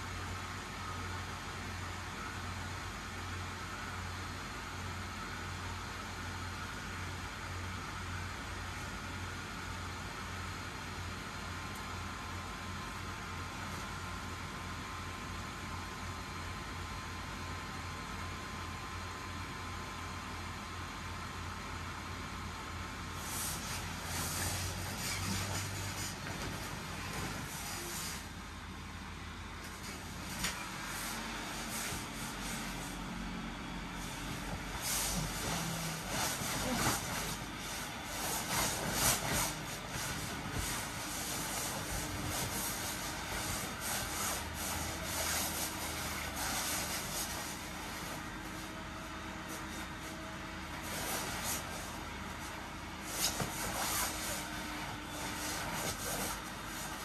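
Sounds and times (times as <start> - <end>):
blower fan running: 0.0 - 57.0
plastic suit rustling: 23.2 - 28.2, 33.9 - 48.8, 49.4 - 57.0.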